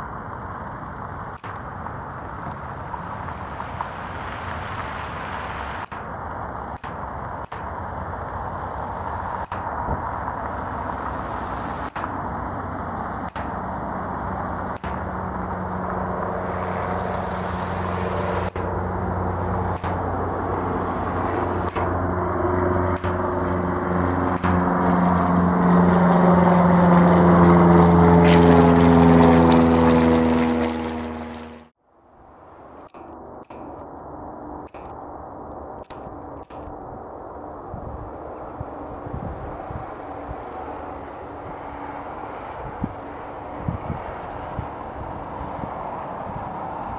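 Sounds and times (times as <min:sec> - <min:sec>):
propeller plane passing overhead: 0:00.0 - 0:46.9.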